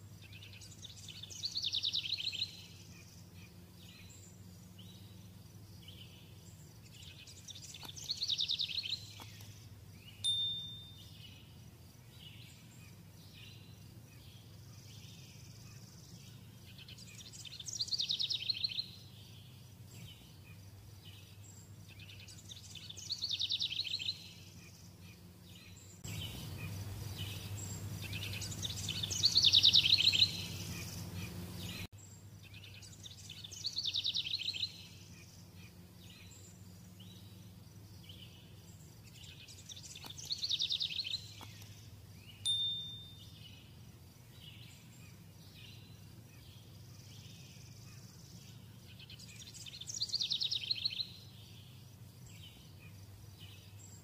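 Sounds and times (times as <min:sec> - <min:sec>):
bird singing trilled phrase: 0:10.1 - 0:11.4, 0:42.3 - 0:43.7
high ping: 0:10.3 - 0:11.2, 0:42.5 - 0:43.3.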